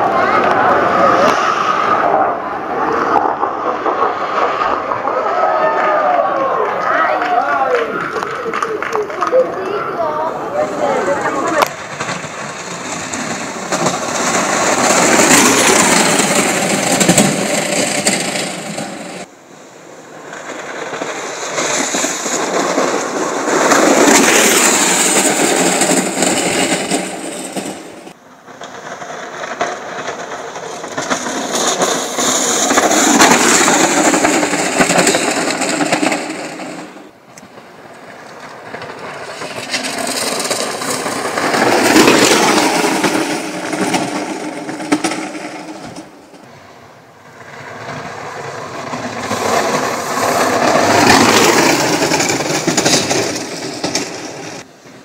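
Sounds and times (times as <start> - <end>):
cart wheels rumbling on asphalt: 0.0 - 55.0.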